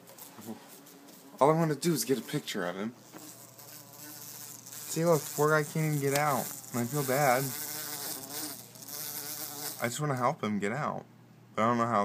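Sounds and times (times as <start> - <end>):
bee buzzing at a window: 3.0 - 10.0.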